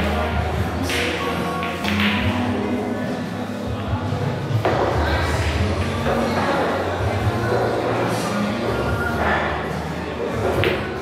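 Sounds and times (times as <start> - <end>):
background music: 0.0 - 11.0
indistinct voices: 0.0 - 11.0.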